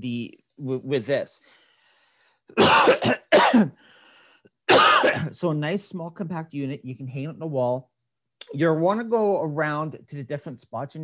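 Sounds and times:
man coughing: 0:02.6 - 0:03.8, 0:04.7 - 0:05.4.

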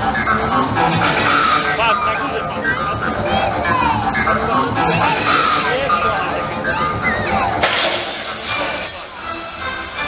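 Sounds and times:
loud show music: 0:00.0 - 0:10.0.

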